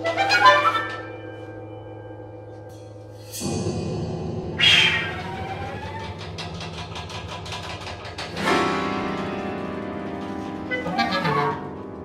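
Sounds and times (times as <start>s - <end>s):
clarinet piano and percussion music: 0.0s - 3.6s, 4.5s - 12.0s.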